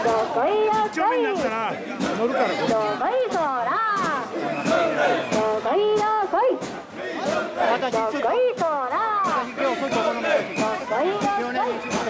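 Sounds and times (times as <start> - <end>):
sharp claps: 2.0 - 12.0
group chanting shouted notes: 4.0 - 6.2.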